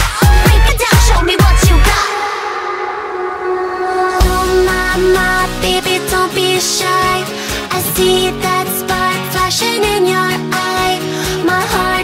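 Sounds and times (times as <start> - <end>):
sustained synth chord: 2.2 - 6.6.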